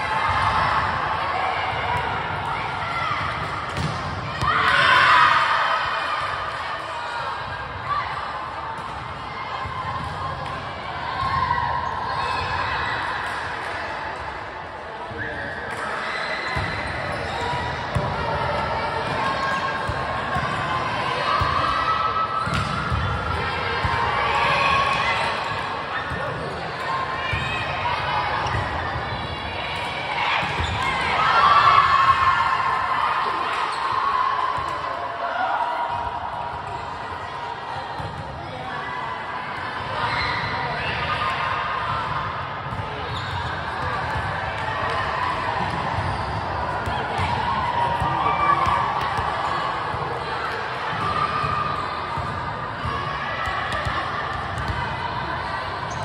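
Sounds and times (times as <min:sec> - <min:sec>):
players calling and chattering: 0:00.0 - 0:56.0
volleyballs struck and bouncing: 0:01.8 - 0:04.8, 0:22.4 - 0:25.4.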